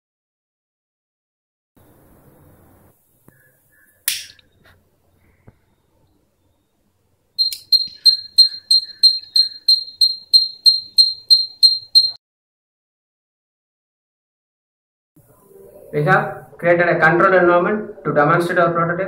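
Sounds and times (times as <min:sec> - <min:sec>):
high-pitched buzzer beeps: 0:07.4 - 0:12.2.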